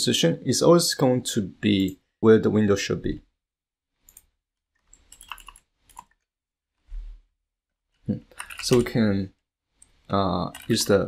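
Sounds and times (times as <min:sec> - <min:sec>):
computer keyboard keystrokes: 0:04.1 - 0:06.2, 0:08.3 - 0:09.0, 0:09.8 - 0:11.0.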